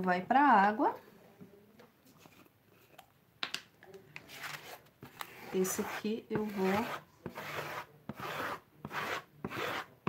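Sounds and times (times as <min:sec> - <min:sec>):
craft items set on table: 0:01.0 - 0:09.9.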